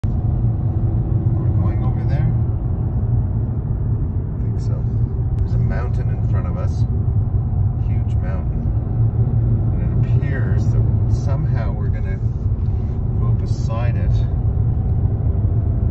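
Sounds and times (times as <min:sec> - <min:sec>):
car engine and tyre rumble: 0:00.0 - 0:15.9.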